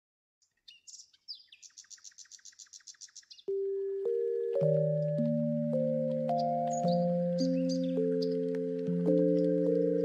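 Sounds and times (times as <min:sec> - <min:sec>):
bird chirping: 0:00.4 - 0:10.0.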